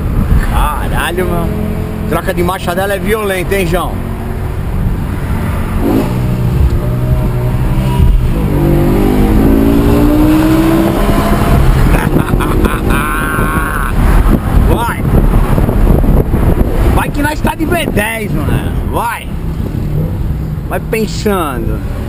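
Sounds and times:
car engine revving hard: 4.1s - 17.0s.

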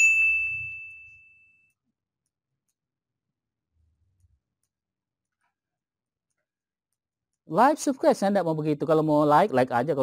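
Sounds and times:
high ringing tone: 0.0s - 1.7s.

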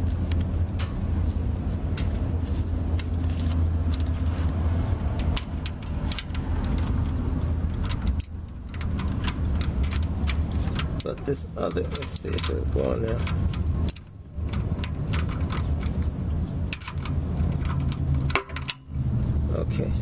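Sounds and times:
socket wrench clicking on metal: 3.9s - 18.9s.

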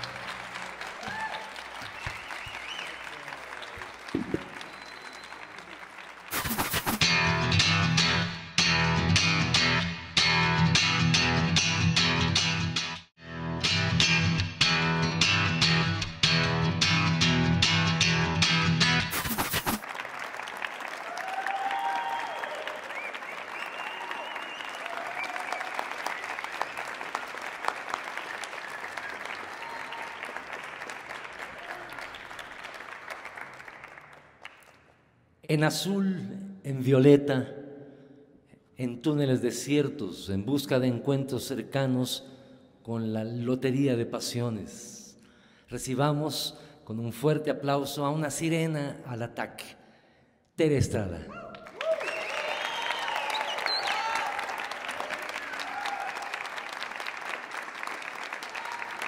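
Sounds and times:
audience applauding: 0.0s - 7.0s, 19.1s - 34.9s, 51.5s - 59.0s
guitar-led music sting: 7.0s - 19.2s.

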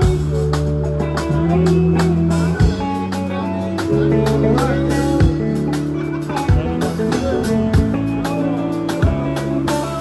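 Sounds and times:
bass notes: 0.0s - 10.0s
drum kit beat: 0.0s - 10.0s
guitar: 0.0s - 10.0s.

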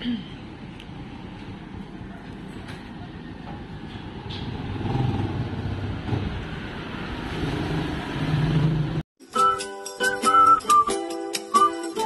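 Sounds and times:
vehicle engine hum: 0.0s - 9.0s
outdoor noise: 0.0s - 12.0s.

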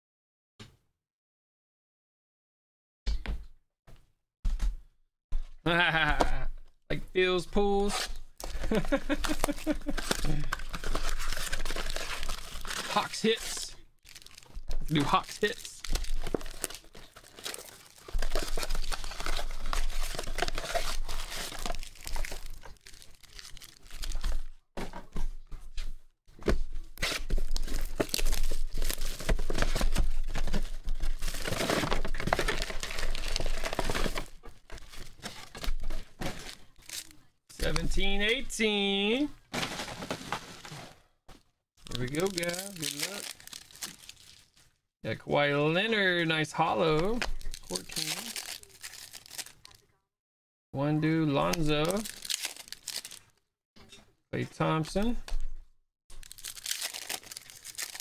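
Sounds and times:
shrink wrap tearing and crinkling: 7.9s - 24.6s, 27.0s - 37.3s, 41.8s - 44.8s, 47.0s - 49.9s, 51.4s - 53.4s, 56.1s - 58.0s
person speaking: 12.8s - 13.8s, 14.8s - 15.9s, 36.6s - 39.4s, 41.9s - 43.3s, 45.1s - 48.8s.

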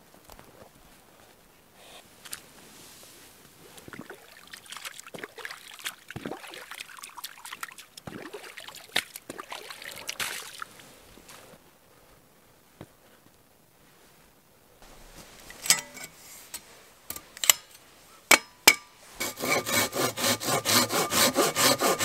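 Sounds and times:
water splashing and trickling: 3.8s - 10.8s.

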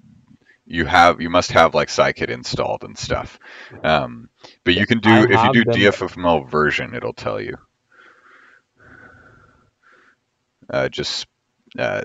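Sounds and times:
soft breathing near microphone: 3.3s - 4.7s, 7.9s - 10.2s.

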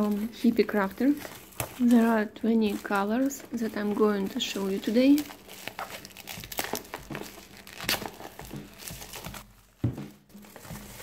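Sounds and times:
plastic shrink-wrap crinkling: 0.0s - 11.0s.

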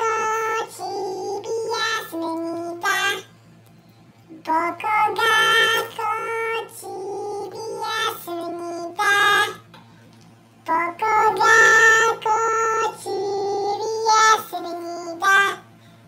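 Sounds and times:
high-pitched childlike singing: 0.0s - 3.3s, 4.4s - 9.6s, 10.7s - 15.6s.

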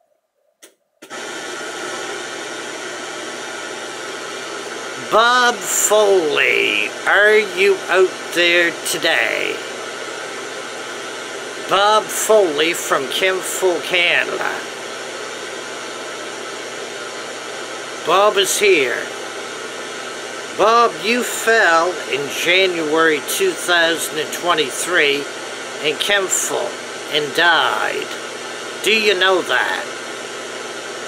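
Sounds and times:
radio static hiss: 1.0s - 31.0s.

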